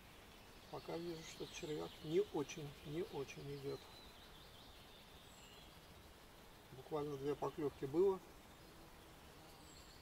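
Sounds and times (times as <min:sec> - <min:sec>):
faint outdoor ambience: 0:00.0 - 0:10.0
small bird chirp: 0:00.0 - 0:10.0.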